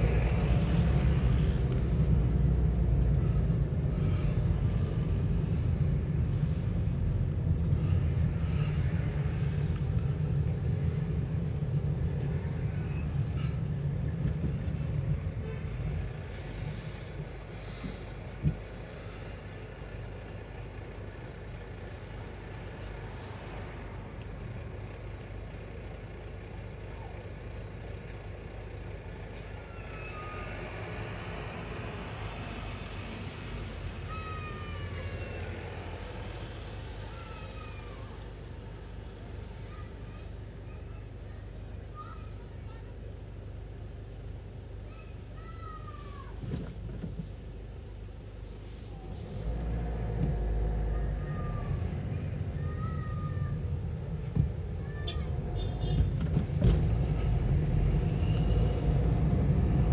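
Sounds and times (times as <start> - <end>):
car road and engine noise: 0.0 - 59.9
bus brakes squealing: 12.8 - 17.2, 29.4 - 32.2, 57.7 - 59.2
bus air brake hiss: 15.6 - 19.5, 39.2 - 40.2, 57.9 - 59.0.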